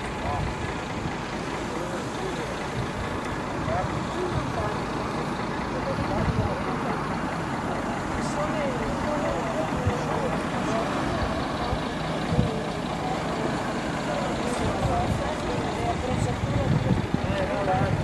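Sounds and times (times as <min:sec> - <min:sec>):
bus diesel engine idling: 0:00.0 - 0:18.0
people chattering: 0:00.0 - 0:18.0.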